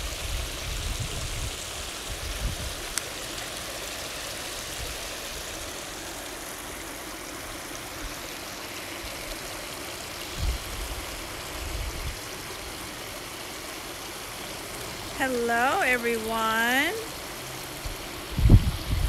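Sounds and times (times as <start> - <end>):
wind buffeting microphone: 0.0 - 2.8, 10.3 - 12.2, 17.9 - 19.0.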